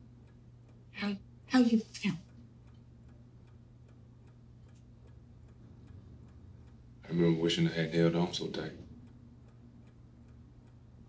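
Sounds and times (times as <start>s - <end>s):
faint even ticking: 0.0s - 11.0s
low steady hum: 0.0s - 11.0s.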